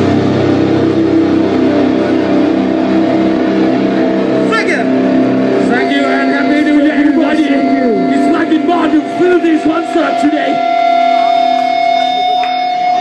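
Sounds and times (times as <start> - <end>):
distorted electric guitar and bass drone: 0.0 - 13.0.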